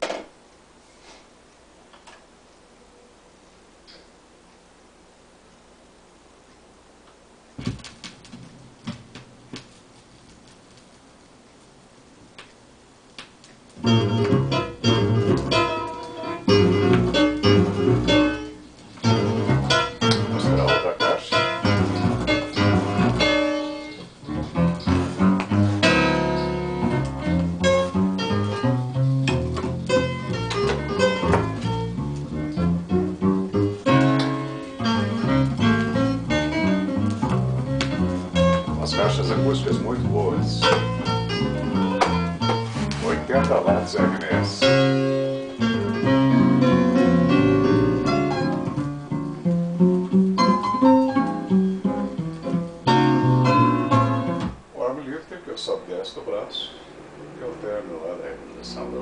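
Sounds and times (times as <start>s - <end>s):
record surface hiss: 0.0s - 59.0s
record music over loudspeakers: 19.0s - 23.5s, 41.6s - 48.6s.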